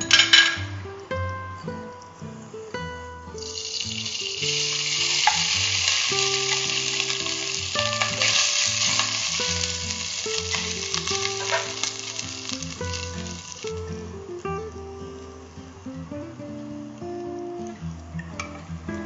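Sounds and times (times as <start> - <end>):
soft background music: 0.0 - 19.0
ghee sizzling in a pot: 3.4 - 14.1.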